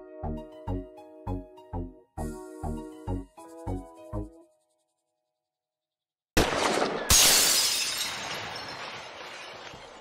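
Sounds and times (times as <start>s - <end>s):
glass shattering: 6.6s - 10.0s.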